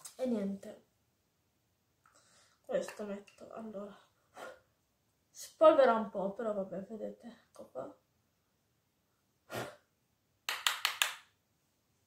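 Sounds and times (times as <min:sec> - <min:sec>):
sharp taps of makeup items: 0:10.5 - 0:11.3.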